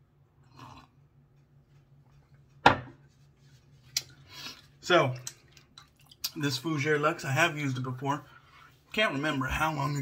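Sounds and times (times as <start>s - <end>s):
mug knocking on desk: 2.6s - 3.0s.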